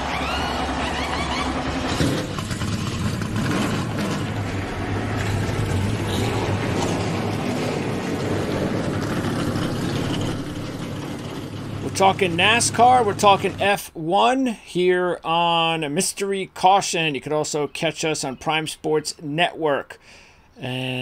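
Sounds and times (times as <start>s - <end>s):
race car engine at high revs: 0.0s - 13.6s.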